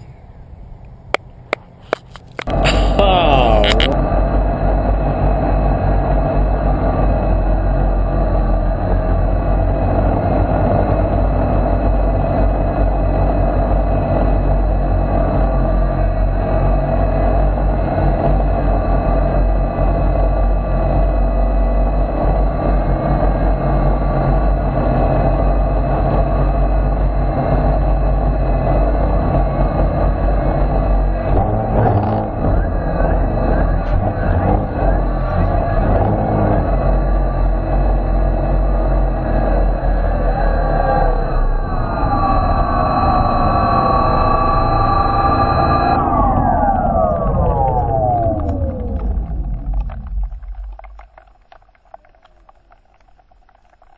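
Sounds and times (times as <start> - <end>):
drone motors whining: 25.2 - 52.2.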